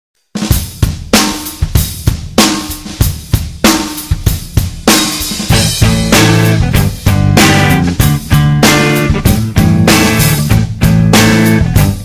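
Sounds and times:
rock drum kit beat: 0:00.3 - 0:12.0
low bass line: 0:05.5 - 0:12.0.

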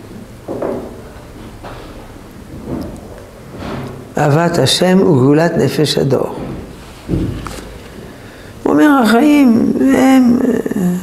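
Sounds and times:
low room rumble and hiss: 0:00.0 - 0:11.0.

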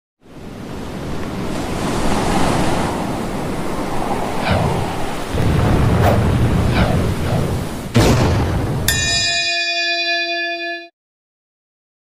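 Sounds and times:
ocean surf washing: 0:00.2 - 0:09.0.

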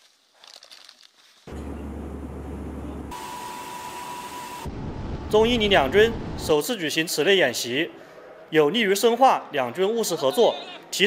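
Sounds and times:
aircraft cabin noise: 0:01.5 - 0:03.5
wind and engine rumble: 0:04.7 - 0:06.5.

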